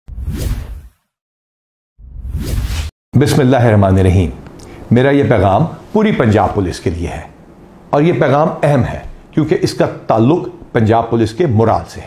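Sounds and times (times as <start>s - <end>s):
whoosh: 0.1s - 1.0s, 2.0s - 2.9s.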